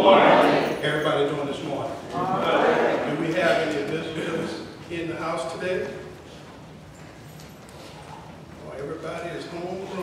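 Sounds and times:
man talking: 8.6s - 10.0s.

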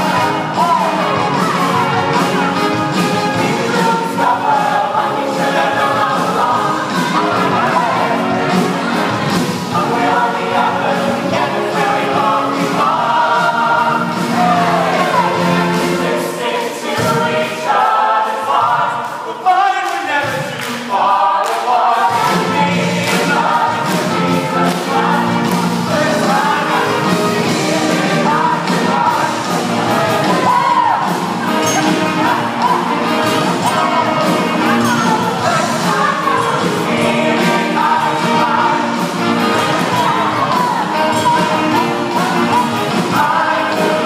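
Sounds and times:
mixed choir singing: 0.0s - 44.0s.

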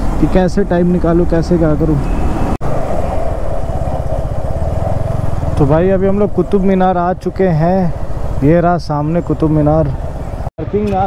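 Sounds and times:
motorcycle engine running: 3.2s - 10.5s.

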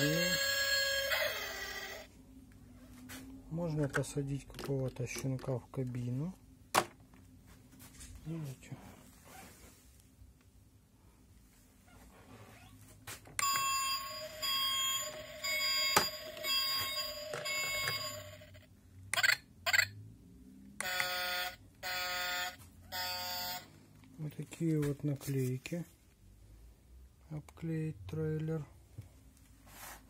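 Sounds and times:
electronic toy tune: 0.0s - 2.1s, 13.4s - 19.9s, 20.8s - 23.7s.

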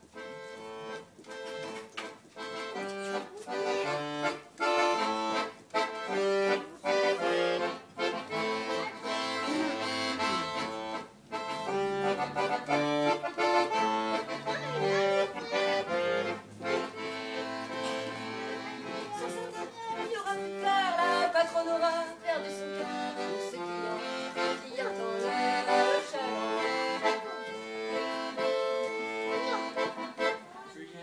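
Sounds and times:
accordion playing a tune: 0.0s - 31.0s.

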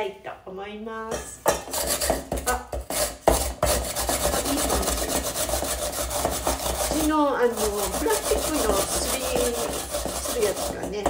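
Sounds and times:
onion grated on grater: 1.4s - 11.0s.

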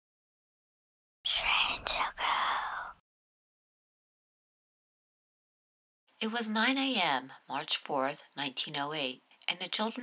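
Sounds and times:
person whispering: 1.3s - 3.0s.

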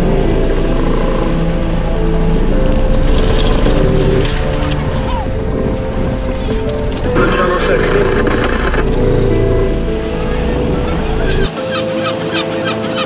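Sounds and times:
boat engine rumble: 0.0s - 12.9s
background music: 0.0s - 13.0s
water splashing: 0.0s - 13.0s
bird calls: 2.6s - 13.0s.

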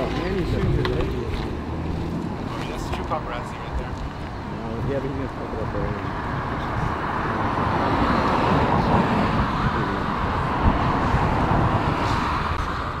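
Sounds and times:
road traffic rushing: 0.0s - 13.0s.

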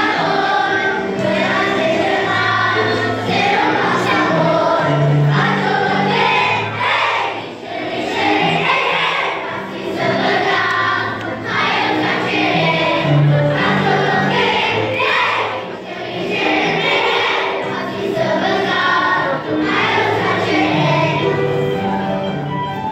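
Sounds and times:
children's choir singing: 0.0s - 22.9s.

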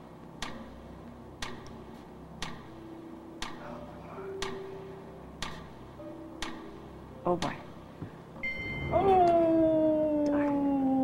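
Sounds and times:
countdown timer ticking: 0.4s - 9.8s.

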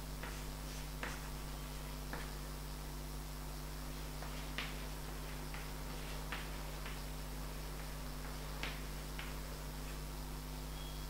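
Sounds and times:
low electrical hum: 0.0s - 11.0s
chalk tapping on blackboard: 0.2s - 2.4s.

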